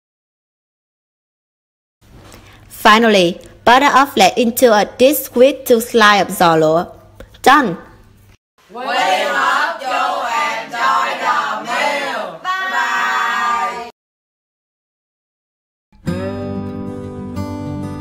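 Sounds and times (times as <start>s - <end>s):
teenagers calling out in unison: 8.7s - 13.9s
acoustic guitar music: 16.0s - 18.0s.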